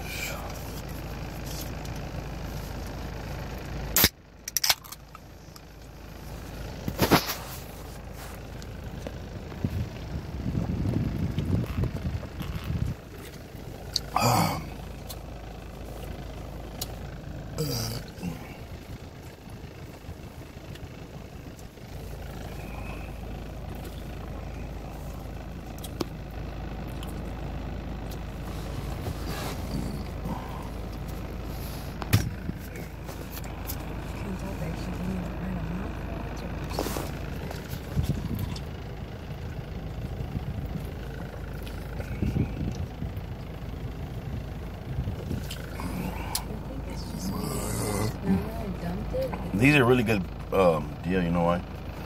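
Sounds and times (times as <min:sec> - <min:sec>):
vehicle engine idling: 0:00.0 - 0:52.0.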